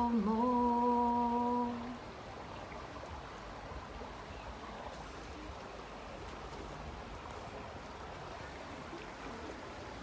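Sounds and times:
woman singing: 0.0 - 2.0
faint background noise: 0.0 - 10.0.

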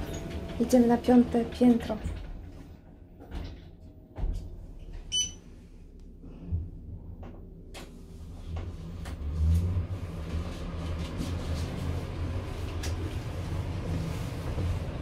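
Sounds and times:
lift drive low rumble: 0.0 - 15.0
short electronic beep: 5.1 - 5.4.

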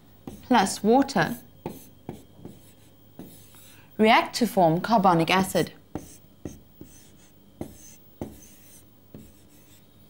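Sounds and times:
marker pen scratching on board: 0.2 - 0.6, 1.3 - 3.7, 5.9 - 9.8.

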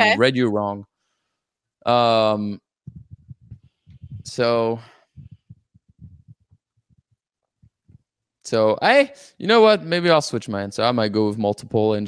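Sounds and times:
microphone handling thumps: 2.9 - 7.0.

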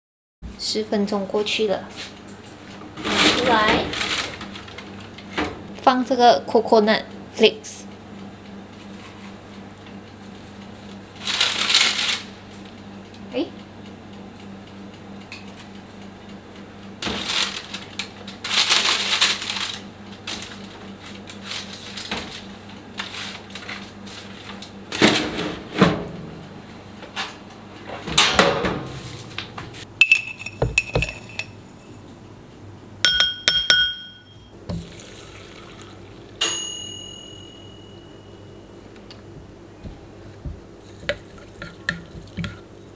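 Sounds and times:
granola rustling on baking tray: 11.2 - 12.3, 17.1 - 24.6
low steady hum: 28.9 - 42.9
dishes clinking: 30.0 - 31.6, 33.1 - 34.5.

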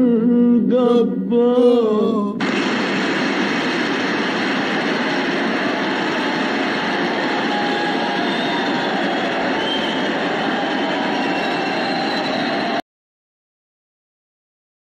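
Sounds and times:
dense rushing noise: 2.4 - 12.8.

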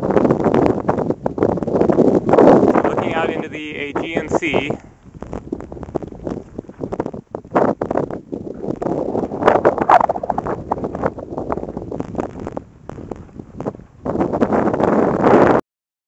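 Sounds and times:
wind buffeting microphone: 0.0 - 15.6.

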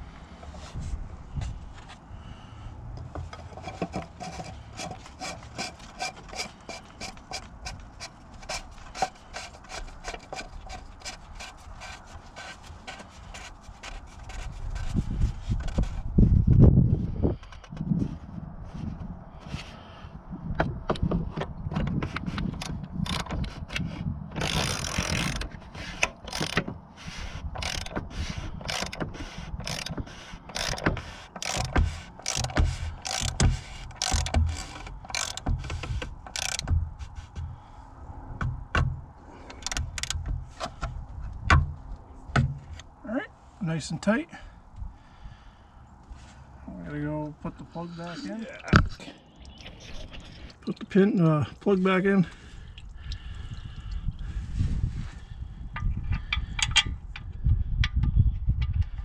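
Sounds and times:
plastic cap threading with clicks: 21.8 - 26.7, 27.5 - 36.8, 39.5 - 40.8
socket ratchet clicking: 22.5 - 23.4, 24.4 - 26.7, 27.5 - 36.8, 39.5 - 40.3.

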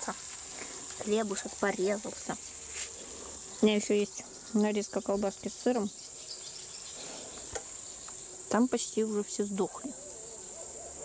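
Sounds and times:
vegetables sizzling in a pan: 0.0 - 9.3
insects chirring: 0.0 - 11.0.

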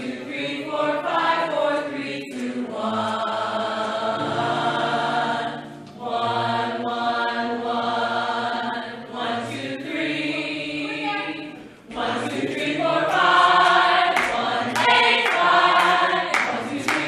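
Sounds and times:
group of singers warming up: 0.0 - 17.0.

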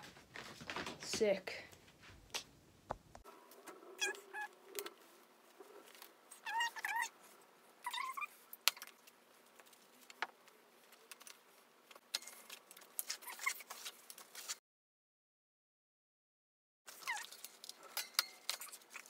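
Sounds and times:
rubbery tyre squeaks: 4.0 - 4.9, 6.3 - 7.2, 13.0 - 14.5.

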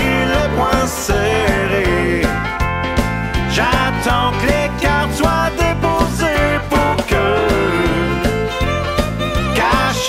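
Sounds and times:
country music instrumental: 0.0 - 10.0.

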